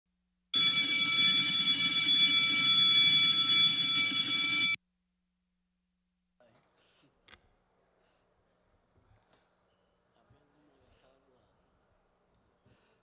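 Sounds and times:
bell ringing: 0.6s - 4.8s.

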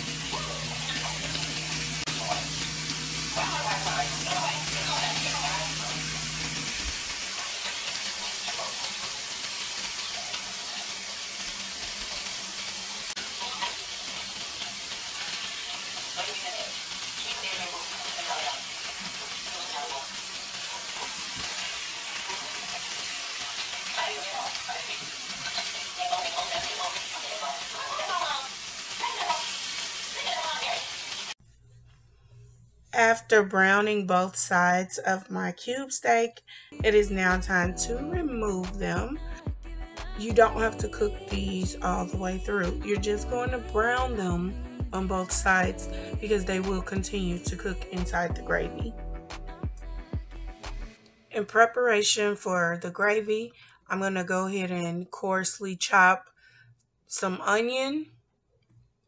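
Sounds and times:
steaks sizzling in oil: 0.0s - 31.4s.

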